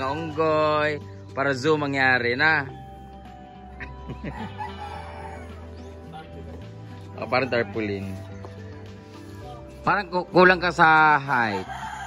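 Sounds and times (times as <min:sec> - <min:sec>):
background music: 0:00.0 - 0:12.0
rooster calling: 0:04.2 - 0:06.1, 0:11.4 - 0:12.0.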